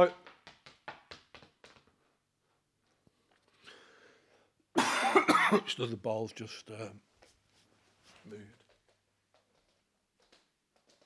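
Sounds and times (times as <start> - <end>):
man speaking: 5.5 - 7.0, 8.2 - 8.6
faint soft rustle: 7.1 - 9.8.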